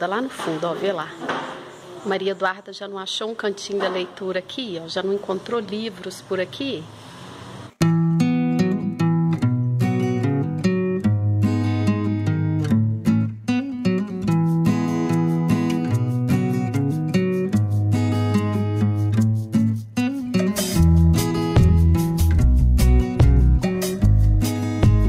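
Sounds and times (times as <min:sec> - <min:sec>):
acoustic guitar music: 0:07.8 - 0:25.0
low bass line: 0:21.0 - 0:25.0.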